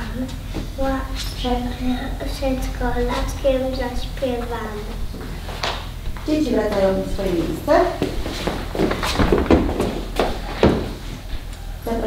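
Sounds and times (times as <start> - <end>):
children's footsteps on wooden floor: 0.0 - 11.6.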